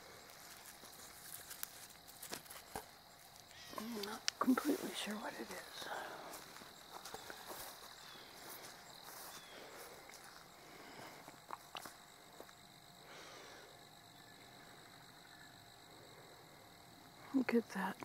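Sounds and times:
high-pitched insect drone: 0.0s - 18.0s.

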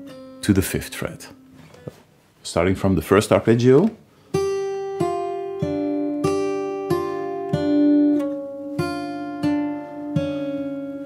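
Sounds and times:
fingerpicked acoustic guitar: 0.0s - 2.1s, 4.0s - 11.0s.

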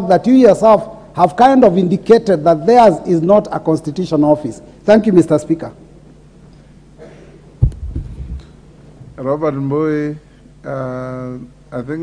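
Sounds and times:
low thumps of person sitting down: 7.6s - 8.5s.

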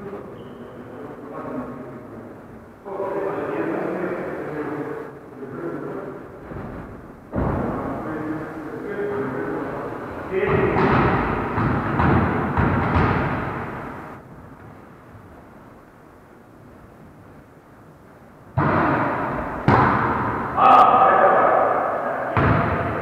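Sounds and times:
volleyball hits in echoing gym: 6.4s - 8.2s, 10.0s - 14.7s, 18.5s - 23.0s.

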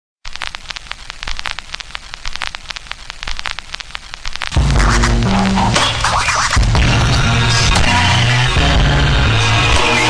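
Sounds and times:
vinyl record crackle: 0.2s - 10.0s.

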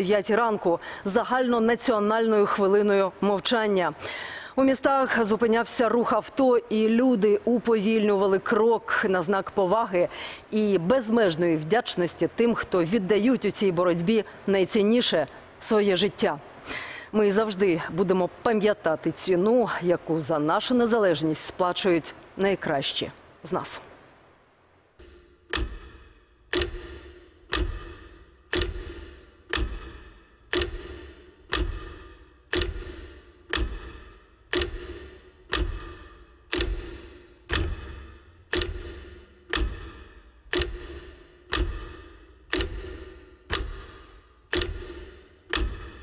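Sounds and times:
metronome ticking: 25.0s - 46.0s.

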